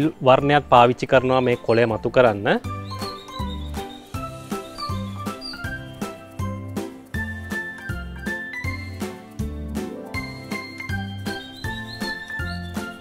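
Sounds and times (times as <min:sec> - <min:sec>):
light background music: 0:00.0 - 0:13.0.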